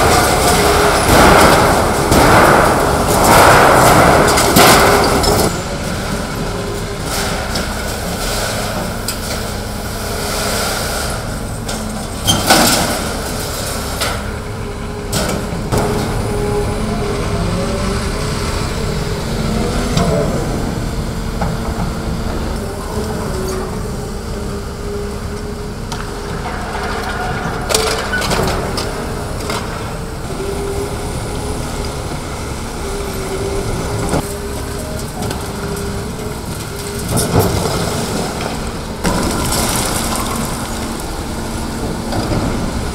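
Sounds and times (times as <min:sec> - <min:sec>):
concrete and metal crunching: 0:00.0 - 0:16.4, 0:33.1 - 0:42.9
excavator diesel engine and hydraulics: 0:00.0 - 0:42.9.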